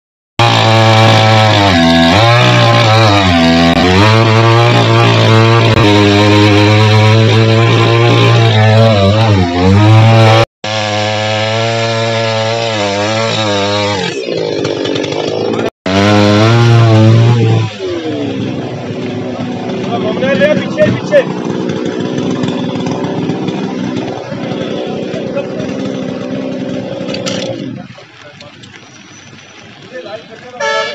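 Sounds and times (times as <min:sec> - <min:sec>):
chainsaw engine running: 0:00.4 - 0:28.1.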